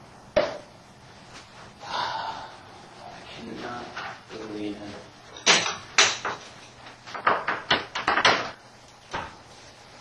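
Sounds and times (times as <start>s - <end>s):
person gasping: 1.8s - 2.7s.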